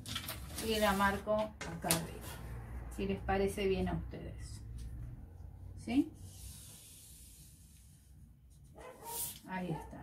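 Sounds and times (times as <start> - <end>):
marker tip rubbing on paper: 8.9 - 9.4.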